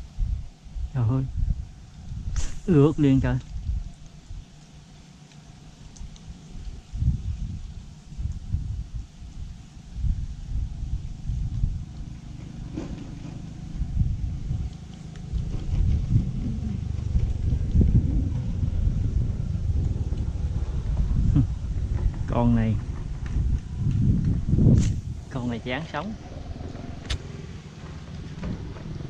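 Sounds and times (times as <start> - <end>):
wind buffeting microphone: 0.0 - 4.7, 5.6 - 29.0.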